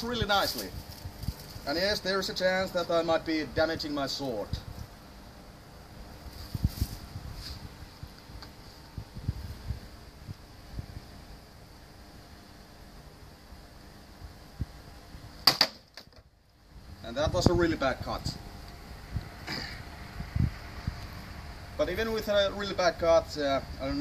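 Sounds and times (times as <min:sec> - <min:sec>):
sword blade striking wood: 0:15.5 - 0:15.8.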